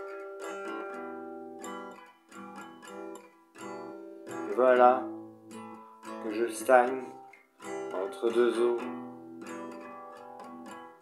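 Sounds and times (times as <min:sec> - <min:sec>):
guitar chords ringing: 0:00.0 - 0:11.0.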